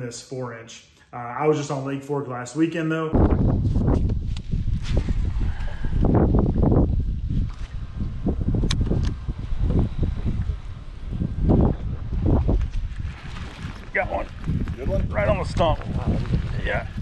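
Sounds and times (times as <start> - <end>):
wind buffeting microphone: 3.1 - 17.0.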